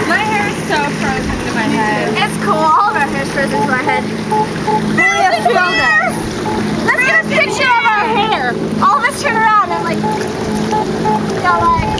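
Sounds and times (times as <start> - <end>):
steady low hum: 0.0 - 11.9
high-pitched wordless cries: 1.6 - 10.2
faint repeating beep: 3.4 - 8.1, 9.6 - 11.9.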